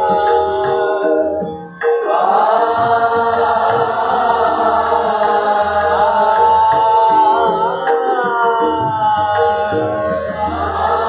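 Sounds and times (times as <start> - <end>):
group of voices singing: 0.0 - 11.0
soft tabla strokes: 0.0 - 11.0.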